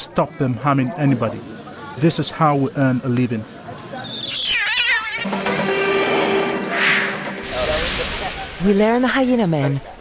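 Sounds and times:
animal high wavering scream: 4.2 - 5.3.

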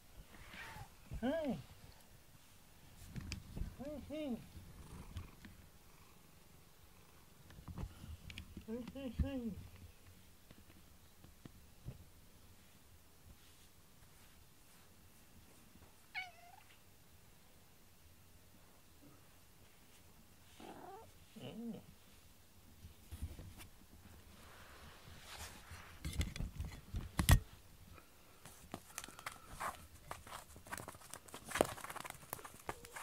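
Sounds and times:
cat purring: 3.6 - 7.7, 20.4 - 22.2
cat meow: 16.1 - 16.8.

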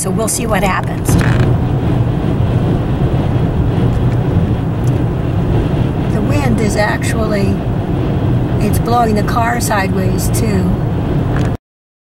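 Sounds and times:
gusting wind buffeting car: 0.0 - 11.6
road and engine noise in car: 0.0 - 11.6.

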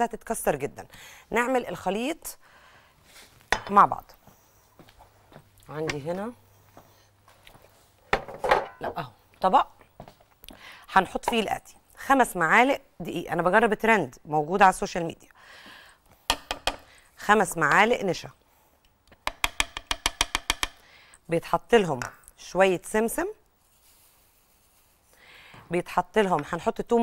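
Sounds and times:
wooden spoon tapping ceramic bowl: 16.3 - 16.8, 19.2 - 20.8.

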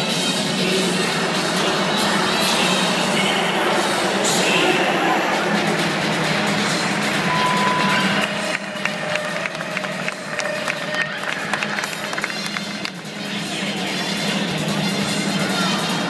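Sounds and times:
crowd noise: 0.0 - 16.0
music over loudspeakers: 0.0 - 16.0.

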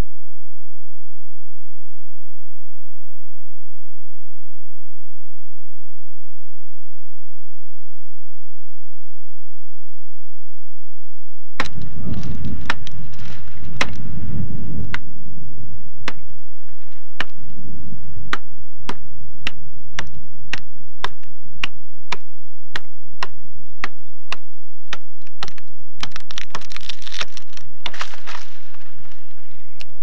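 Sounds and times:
low rumble: 0.0 - 30.0
axe chopping wood: 11.6 - 13.0, 13.7 - 14.0, 14.8 - 15.1, 16.0 - 16.4, 17.2 - 17.4, 18.3 - 28.8.

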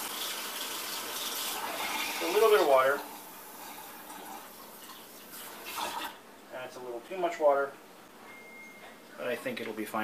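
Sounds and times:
water running into a bowl: 0.0 - 6.2.

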